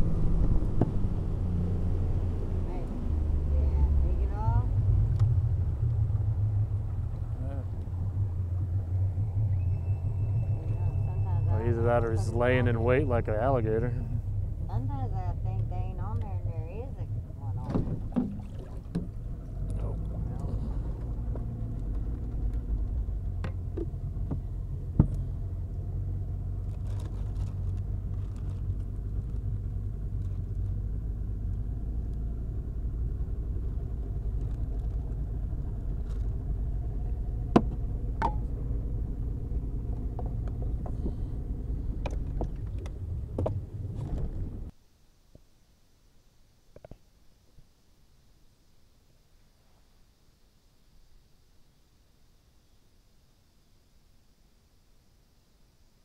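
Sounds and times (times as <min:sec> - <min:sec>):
boat motor running: 0:09.5 - 0:25.5, 0:33.1 - 0:44.7.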